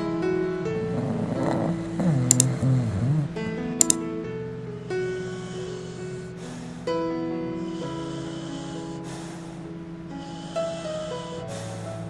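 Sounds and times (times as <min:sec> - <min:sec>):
soft background music: 0:00.0 - 0:12.0
dog whimpering in sleep: 0:00.9 - 0:03.3.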